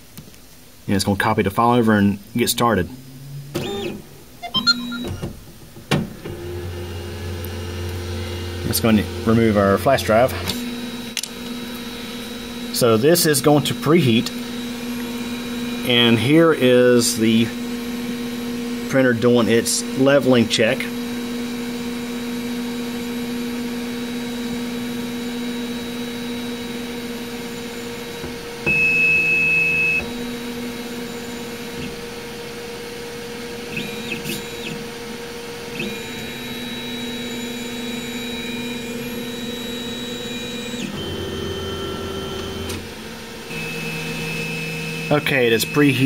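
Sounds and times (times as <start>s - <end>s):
printer motors whining: 3.5s - 46.0s.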